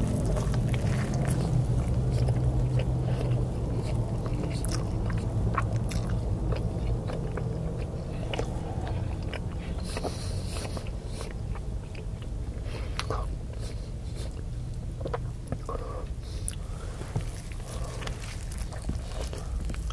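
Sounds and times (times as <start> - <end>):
chewing and biting food: 0.0 - 19.9
low steady hum: 0.0 - 19.9.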